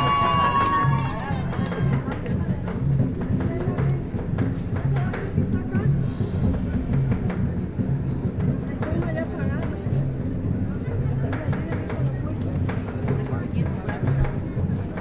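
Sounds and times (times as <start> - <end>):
crowd chatter: 0.0 - 15.0
parade band music with drums: 0.0 - 15.0.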